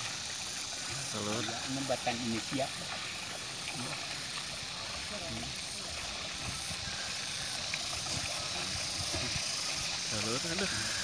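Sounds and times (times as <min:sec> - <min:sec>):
even hiss: 0:00.0 - 0:11.0.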